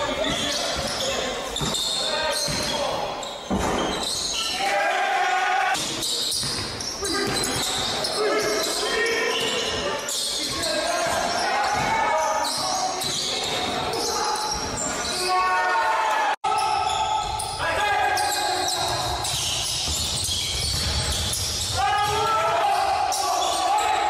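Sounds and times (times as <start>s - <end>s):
players shouting: 4.3s - 6.0s, 21.7s - 24.0s.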